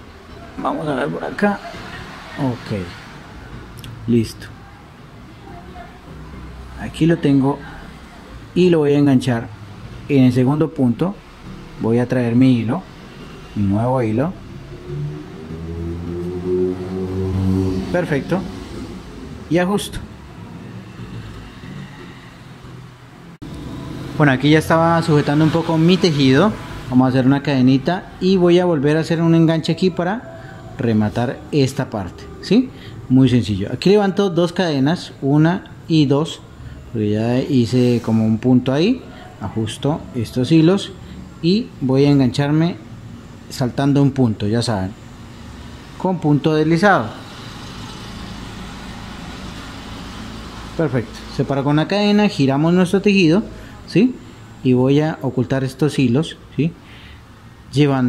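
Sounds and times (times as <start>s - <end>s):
steady background hum and hiss: 0.0s - 58.0s.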